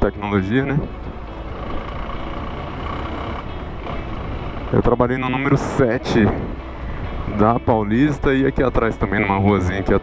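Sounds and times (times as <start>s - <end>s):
motorcycle engine running: 0.0s - 7.5s
wind noise on microphone: 5.5s - 7.8s.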